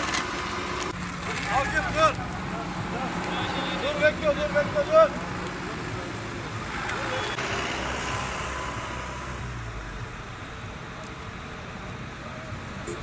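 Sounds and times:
vehicle passing: 0.0s - 10.1s
road traffic noise: 0.0s - 13.0s.

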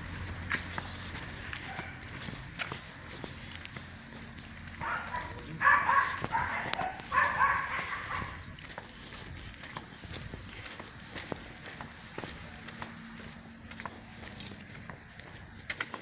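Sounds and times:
dog barking: 1.4s - 2.4s, 4.7s - 8.6s.

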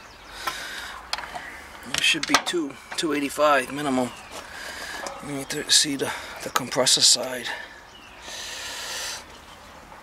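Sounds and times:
person breathing out sharply: 8.2s - 9.3s.

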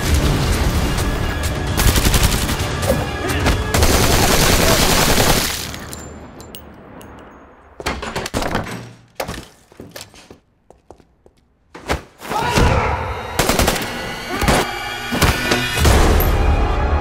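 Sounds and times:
trailer music: 0.0s - 5.4s, 12.6s - 17.0s.

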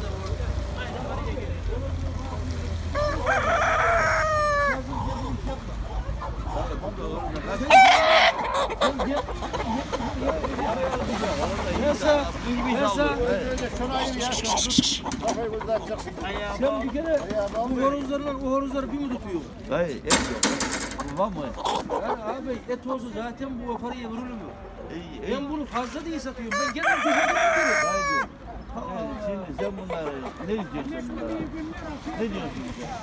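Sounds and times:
chickens rustling: 0.0s - 19.7s, 20.6s - 24.5s, 25.4s - 33.0s
low market chatter: 0.0s - 33.0s
chickens calling: 2.2s - 19.5s, 20.4s - 31.5s
rooster crowing: 2.9s - 4.8s, 26.5s - 28.3s.

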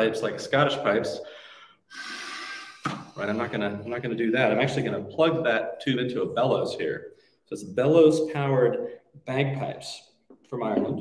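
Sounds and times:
man blowing air: 1.2s - 3.4s.

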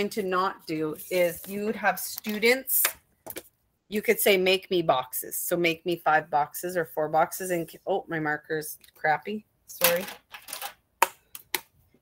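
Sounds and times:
marker scratching on whiteboard: 0.7s - 1.8s.

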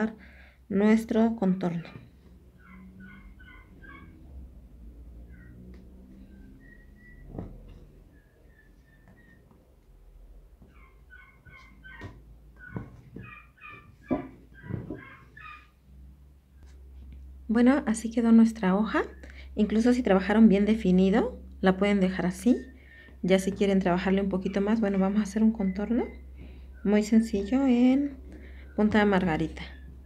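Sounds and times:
animal calls with high notes: 1.9s - 4.3s.

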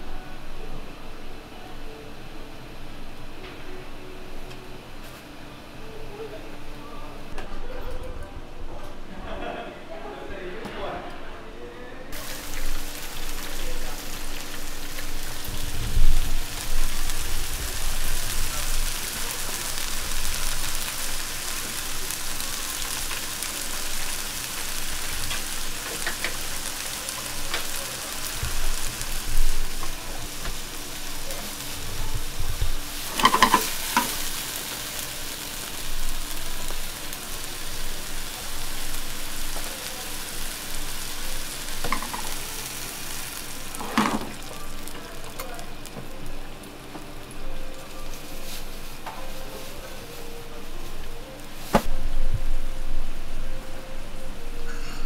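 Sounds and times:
food sizzling in a frying pan: 12.1s - 52.1s.

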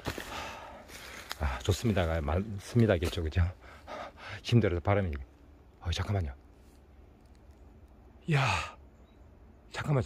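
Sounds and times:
man's breathy exclamation: 8.3s - 8.8s.

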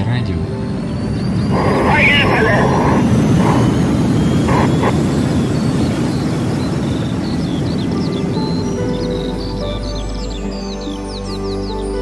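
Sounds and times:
station intro jingle music: 0.0s - 5.0s
sustained musical tones: 0.0s - 12.0s
rushing whooshing noise: 0.6s - 10.6s.

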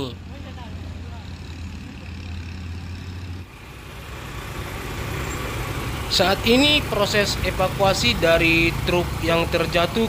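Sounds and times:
heavy vehicle engine idling: 0.0s - 10.0s.

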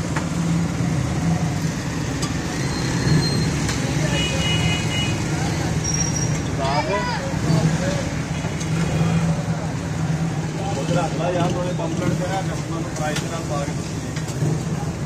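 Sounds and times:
street noise hum: 0.0s - 15.0s
voices talking: 3.6s - 13.9s.

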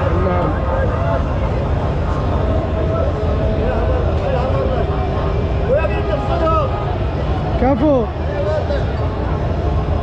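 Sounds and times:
low rumble of street noise: 0.0s - 10.0s
people talking nearby: 0.0s - 10.0s.

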